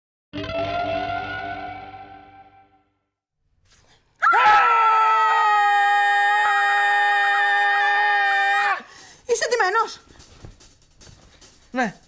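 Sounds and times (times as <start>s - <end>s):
man and woman screaming: 4.2s - 8.9s.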